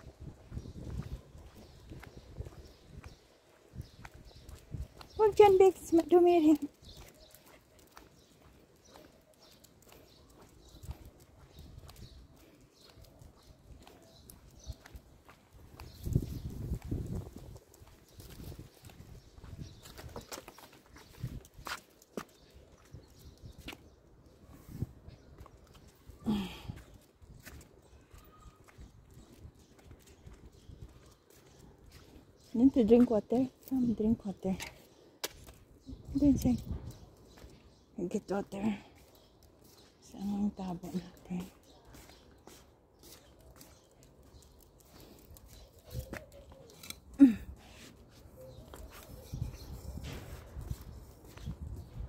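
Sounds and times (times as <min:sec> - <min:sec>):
footsteps on pavement: 0:00.0 - 0:52.0.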